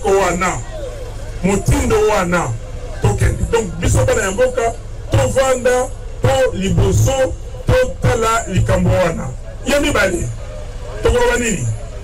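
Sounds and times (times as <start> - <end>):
man speaking through loudspeakers: 0.0 - 12.0
steady low hum: 0.0 - 12.0.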